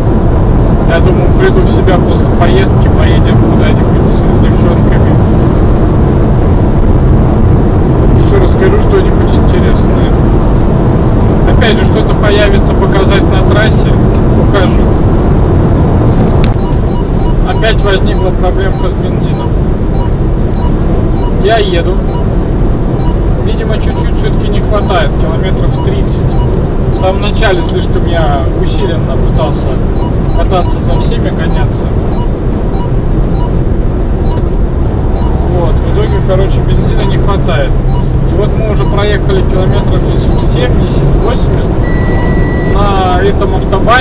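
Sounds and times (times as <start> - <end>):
car road and engine noise: 0.0 - 44.0.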